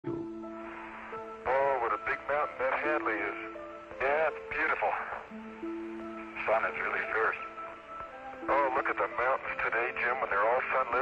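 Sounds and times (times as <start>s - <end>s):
background music of held notes: 0.0s - 11.0s
voice over radio link: 6.4s - 7.5s, 8.5s - 11.0s.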